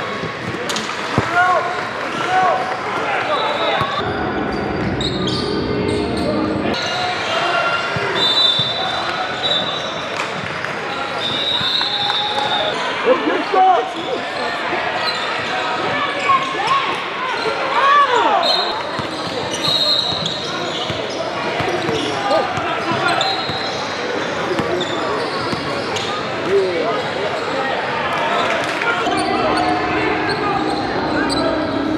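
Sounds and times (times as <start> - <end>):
murmur of voices in gym: 0.0 - 31.9
sneakers squeaking on court: 18.5 - 27.6.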